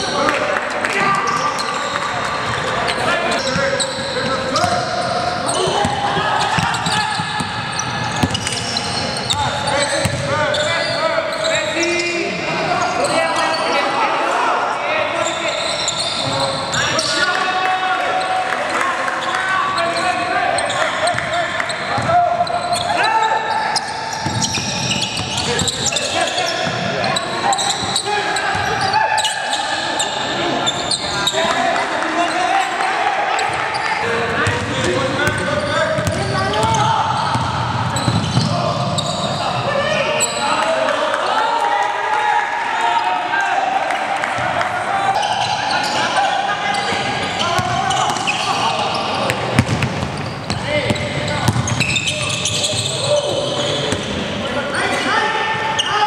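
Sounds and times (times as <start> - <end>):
players' voices calling out: 0.0 - 56.0
basketball bouncing on wooden floor: 8.2 - 8.5, 49.3 - 50.2, 50.9 - 51.8.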